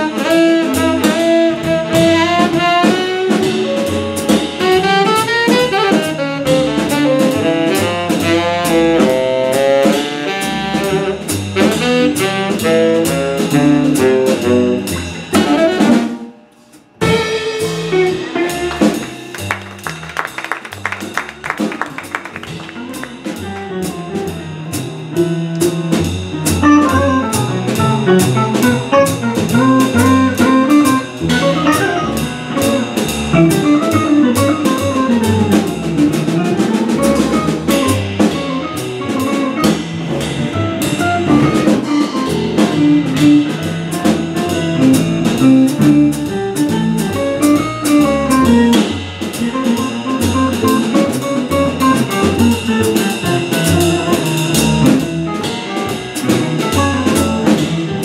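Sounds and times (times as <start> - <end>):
jazz quartet playing: 0.0 - 58.0.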